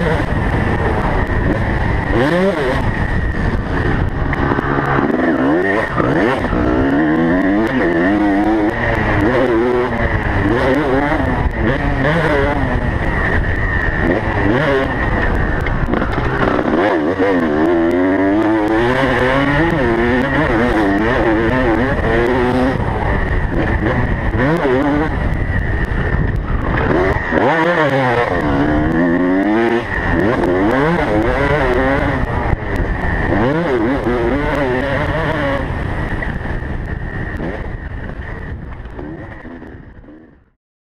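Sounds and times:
motorbike engine revving: 0.0s - 40.6s.

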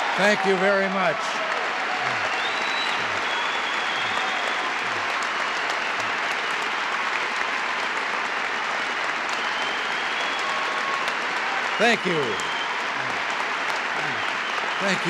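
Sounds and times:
audience applauding: 0.0s - 15.0s.

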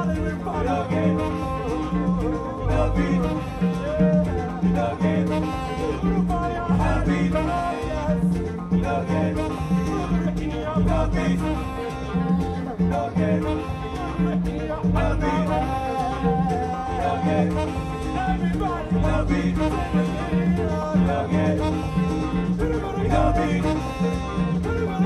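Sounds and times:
afrobeat band playing: 0.0s - 25.0s
man singing: 0.0s - 25.0s.

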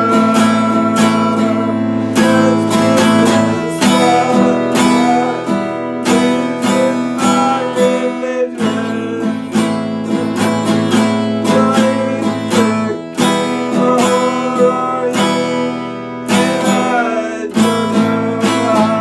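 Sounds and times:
acoustic guitar strummed: 0.0s - 19.0s.

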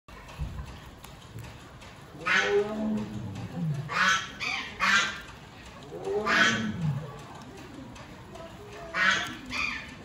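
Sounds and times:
guinea pigs chewing hay: 0.1s - 10.0s.

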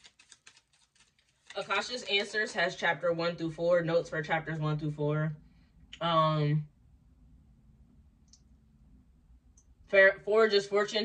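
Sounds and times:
faint low hum: 0.0s - 11.0s
woman speaking: 1.5s - 5.4s, 6.0s - 6.7s, 9.9s - 11.0s.

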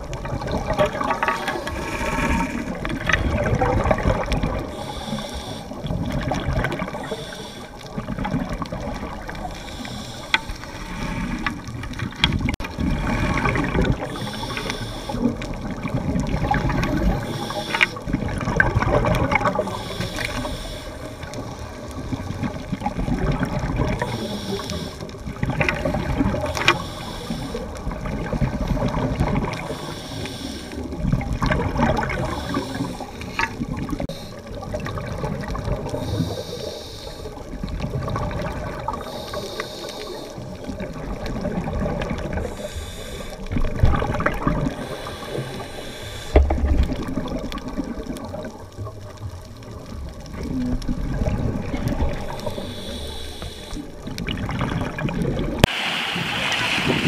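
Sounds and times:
bubbles rushing and gurgling: 0.0s - 57.0s
scuba regulator breathing: 1.2s - 3.0s, 4.5s - 8.3s, 9.1s - 11.8s, 12.8s - 15.8s, 16.8s - 18.2s, 19.4s - 21.7s, 23.9s - 28.6s, 29.4s - 31.1s, 32.0s - 34.7s, 35.4s - 37.5s, 38.6s - 40.7s, 42.2s - 48.2s, 51.6s - 54.2s.

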